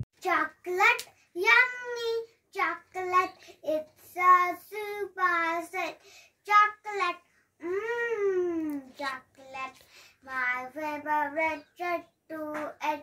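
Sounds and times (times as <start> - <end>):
girl singing unaccompanied: 0.2 - 13.0.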